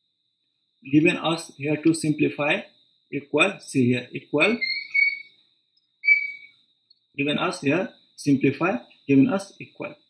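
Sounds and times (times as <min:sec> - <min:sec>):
high whistle-like tone: 0:04.2 - 0:05.4, 0:06.0 - 0:06.6.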